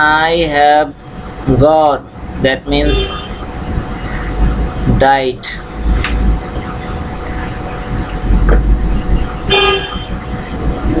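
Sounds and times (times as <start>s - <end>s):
faint steady hum: 0.0s - 11.0s
low rumble: 0.4s - 11.0s.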